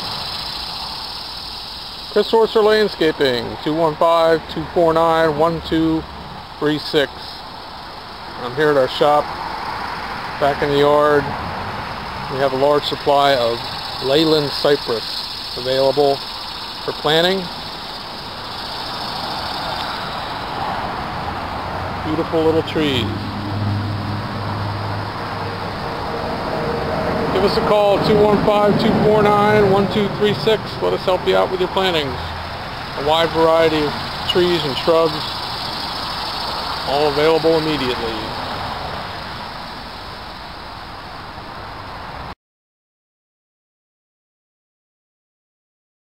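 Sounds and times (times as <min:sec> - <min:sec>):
steady hiss: 0:00.0 - 0:23.6, 0:24.2 - 0:42.3
road vehicle rushing: 0:00.0 - 0:42.4
low engine hum: 0:05.6 - 0:40.5.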